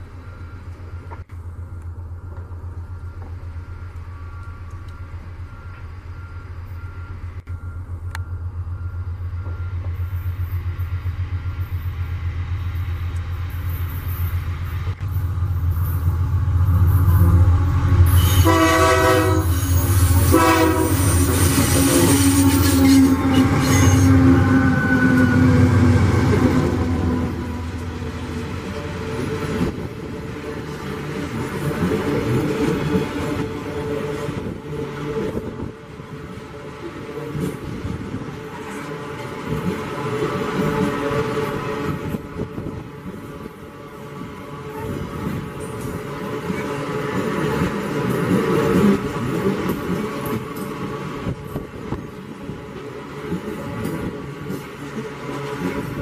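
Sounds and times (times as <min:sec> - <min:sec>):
locomotive engine pulsing: 0:00.0 - 0:56.0
train horn blasts: 0:16.7 - 0:28.6
wheels squealing: 0:19.3 - 0:27.9.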